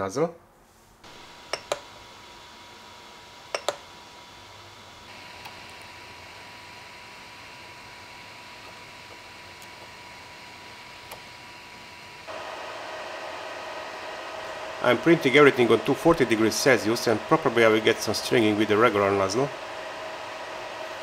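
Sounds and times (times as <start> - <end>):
fan hiss: 0.6 - 21.0
high motor whine: 1.0 - 21.0.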